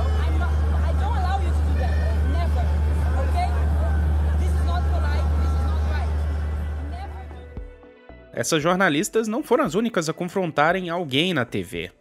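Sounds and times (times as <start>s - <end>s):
woman speaking: 0.0s - 3.8s, 6.8s - 7.6s
outdoor crowd babble: 0.0s - 7.6s.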